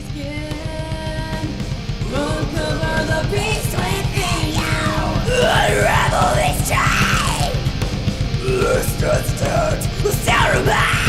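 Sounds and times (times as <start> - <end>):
fast driving drums: 0.0 - 11.0
metal band playing: 0.0 - 11.0
harsh yelled vocal: 2.0 - 7.8, 8.4 - 11.0.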